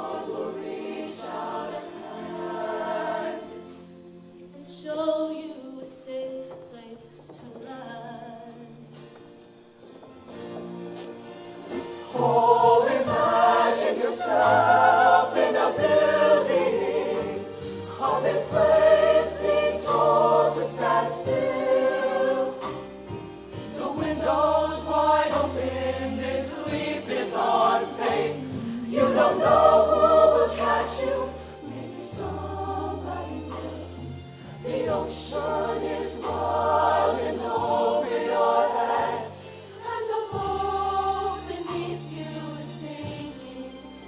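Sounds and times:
choir singing held chords: 0:00.0 - 0:04.6, 0:11.5 - 0:44.0
instrumental accompaniment: 0:06.4 - 0:44.0.

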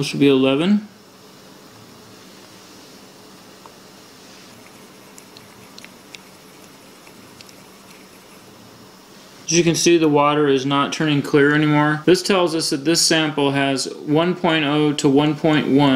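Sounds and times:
faint steady hum: 0:00.0 - 0:15.9.

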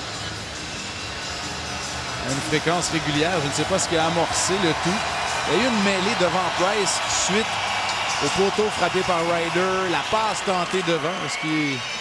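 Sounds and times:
music over sound system: 0:00.0 - 0:10.8.

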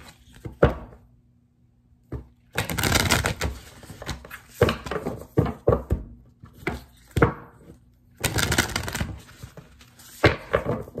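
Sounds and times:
cards being shuffled: 0:02.5 - 0:04.8, 0:08.2 - 0:11.0.

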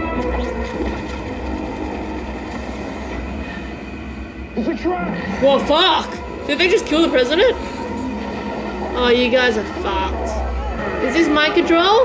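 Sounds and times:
ominous sci-fi drone: 0:00.0 - 0:12.0.

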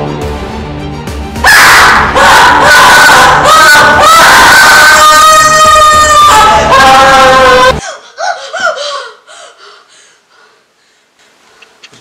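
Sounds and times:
woman gasping: 0:07.8 - 0:10.7.

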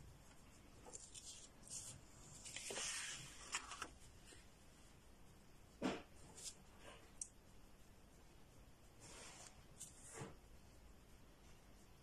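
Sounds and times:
paintbrush stroking across paper: 0:00.0 - 0:12.0.

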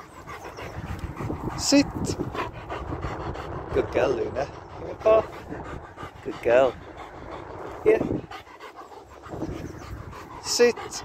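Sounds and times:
dog panting: 0:00.0 - 0:11.0.

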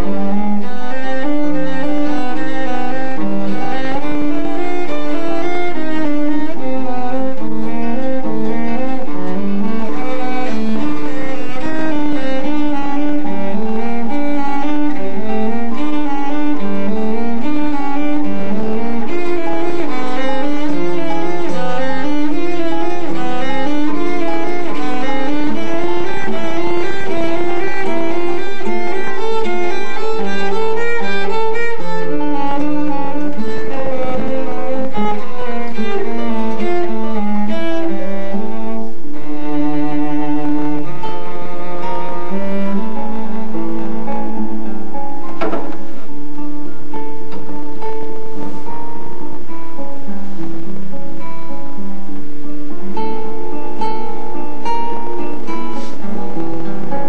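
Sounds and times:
cello and guitar duet: 0:00.0 - 0:57.0.

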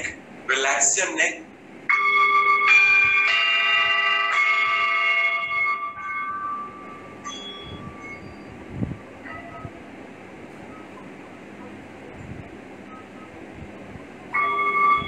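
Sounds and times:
metal chimes ringing: 0:01.9 - 0:08.5.

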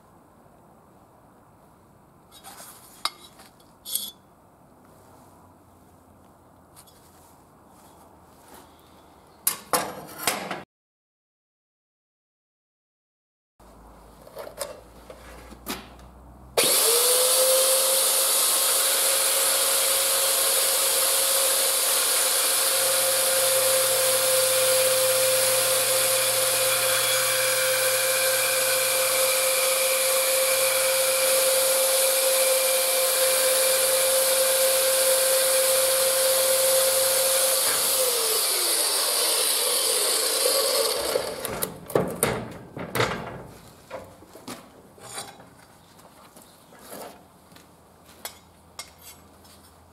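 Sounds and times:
bandsaw cutting metal: 0:16.6 - 0:41.7
saw winding down: 0:16.6 - 0:41.7.

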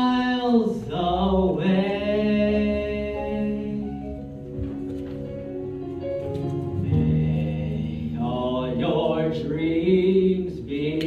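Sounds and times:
instrumental accompaniment: 0:01.6 - 0:11.0
man singing a low note: 0:06.8 - 0:11.0.

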